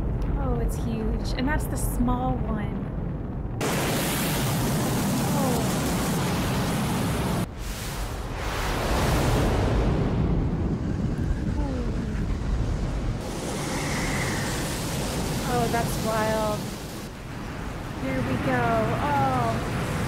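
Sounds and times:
deep rumble: 0.0s - 20.0s
rushing roar of water: 3.6s - 20.0s.

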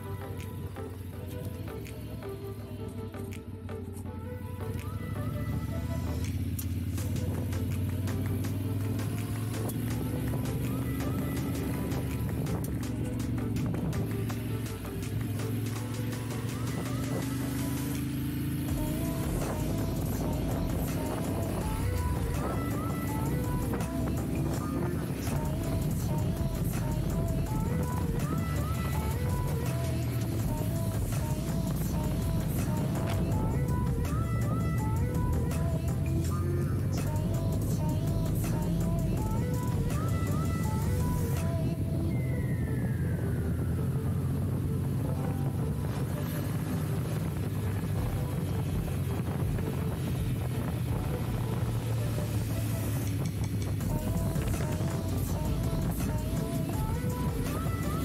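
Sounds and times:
background music: 0.0s - 58.0s
low steady rumble: 0.0s - 58.0s.

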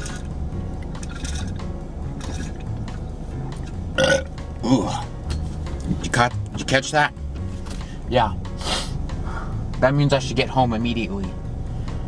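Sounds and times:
background music: 0.0s - 12.0s
man belching loudly: 4.0s - 5.2s.

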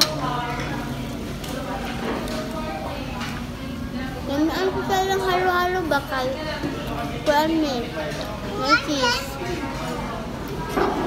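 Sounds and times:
background chatter: 0.0s - 11.0s
child's high voice: 8.6s - 9.4s.

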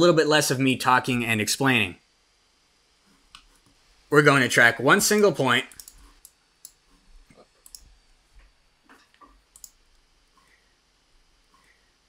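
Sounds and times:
computer mouse clicks: 5.7s - 7.0s, 7.6s - 10.6s.

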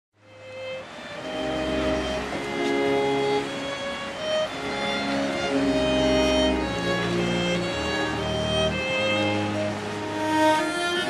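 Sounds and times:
string ensemble holding violin notes: 0.2s - 11.0s.

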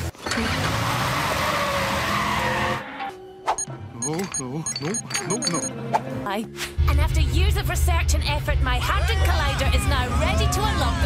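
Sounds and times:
music: 3.0s - 11.0s.

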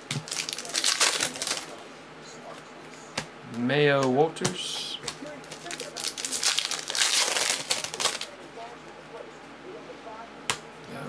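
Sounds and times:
foil wrappers crinkling: 0.0s - 1.8s, 4.7s - 8.4s.

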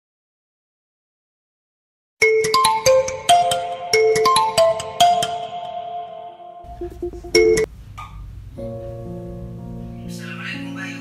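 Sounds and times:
marimba-like phone ringtone: 2.2s - 7.7s.

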